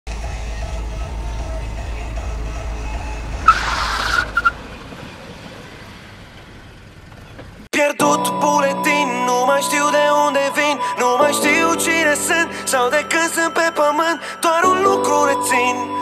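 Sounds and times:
music: 0:00.1 - 0:03.5, 0:07.8 - 0:16.0
car engine rumble inside cabin: 0:00.1 - 0:07.7
short tyre squeals: 0:02.2 - 0:07.6
tyre screech: 0:02.4 - 0:05.8.

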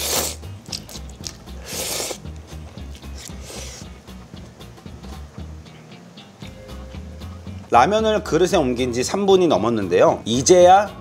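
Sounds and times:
person slurping noodles: 0:00.0 - 0:02.3, 0:03.0 - 0:03.9
background music with bass: 0:00.0 - 0:11.0.

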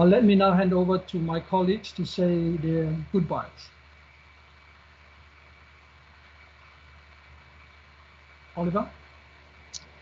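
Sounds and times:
light hiss: 0:00.0 - 0:10.0
low hum: 0:00.0 - 0:10.0
thin high whine: 0:00.0 - 0:10.0.

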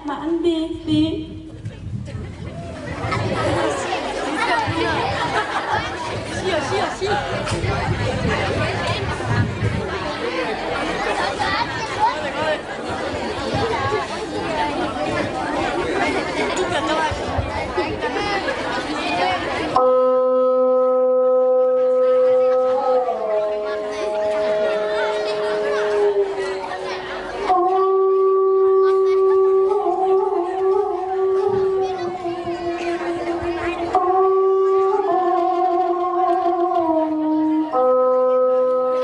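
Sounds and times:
crowd chattering: 0:00.0 - 0:39.0.

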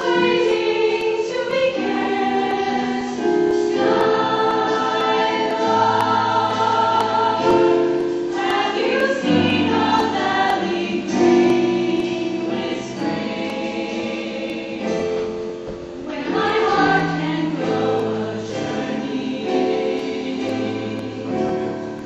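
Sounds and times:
choir singing in close harmony: 0:00.0 - 0:22.0.

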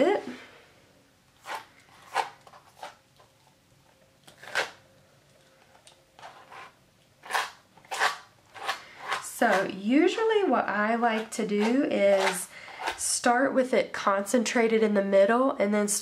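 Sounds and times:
palette knife scraping gritty gel on paper: 0:11.0 - 0:13.0.

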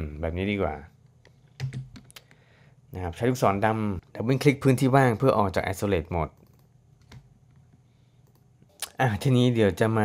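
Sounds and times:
keyboard and mouse clicks: 0:01.2 - 0:02.4, 0:06.3 - 0:09.0.

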